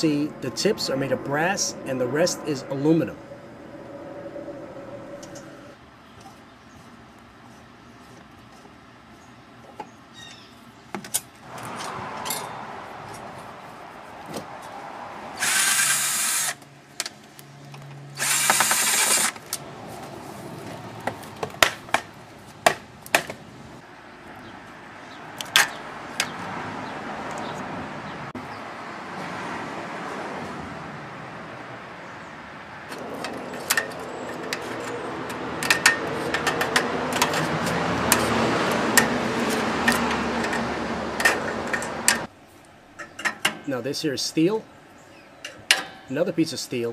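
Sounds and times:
power drill running: 15.4s - 16.6s, 18.2s - 19.4s
metal clanks and knocks: 33.0s - 38.3s, 38.9s - 42.3s, 45.5s - 46.1s.

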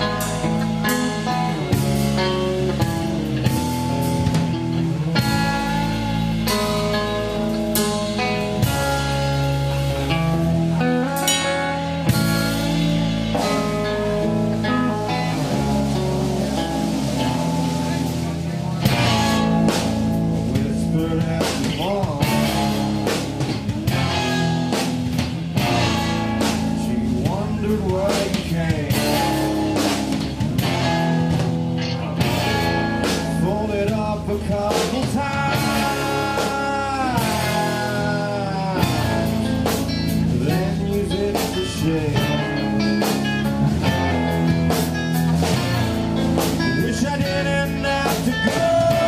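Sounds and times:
rock band playing live: 0.0s - 49.0s.

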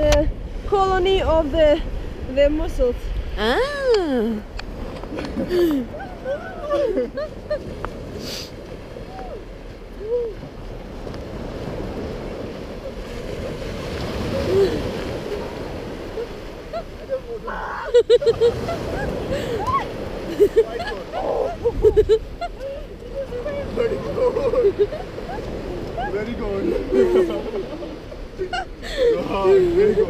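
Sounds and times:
surf washing over sand: 0.0s - 30.0s
water splashing: 3.3s - 30.0s
voices: 12.8s - 30.0s.

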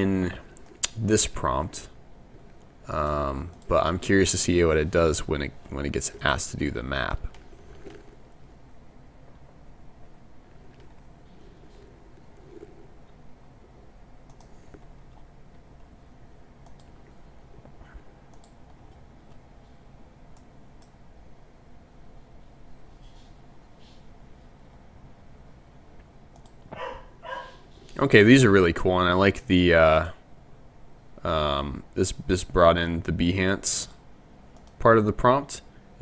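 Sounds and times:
low room hum: 0.0s - 36.0s
computer mouse clicks: 14.2s - 15.2s, 16.6s - 17.0s, 18.3s - 19.4s, 26.3s - 26.8s, 33.9s - 34.8s.

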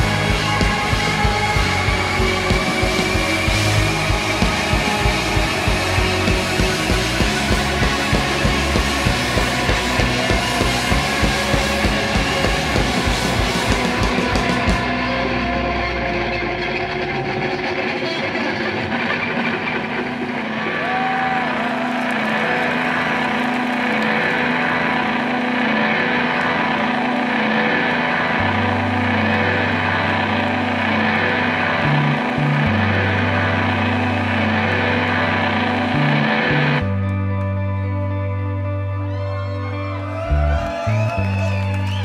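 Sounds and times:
low bass notes: 0.0s - 42.0s
sustained electric guitar tones: 0.0s - 42.0s.

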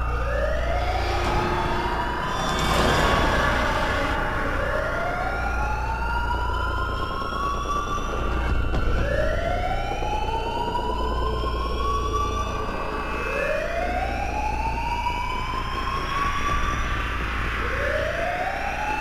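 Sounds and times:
wailing alarm siren: 0.0s - 19.0s.

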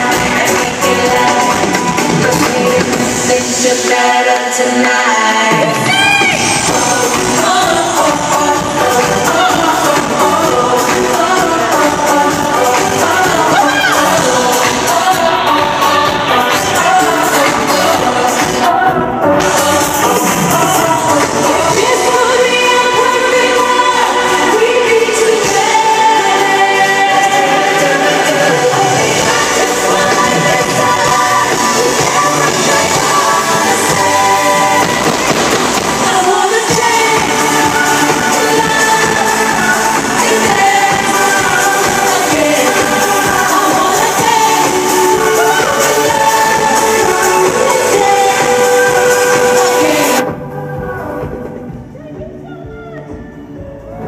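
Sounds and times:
live pop band playing: 0.0s - 52.0s.

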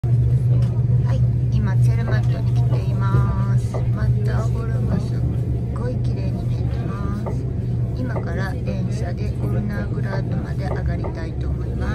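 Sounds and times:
steady low motor hum: 0.0s - 11.9s
people talking: 0.4s - 11.9s.

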